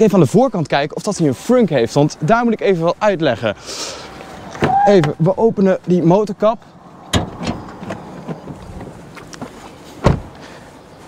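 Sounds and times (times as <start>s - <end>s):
car door shutting: 7.1s - 8.9s, 10.0s - 10.4s.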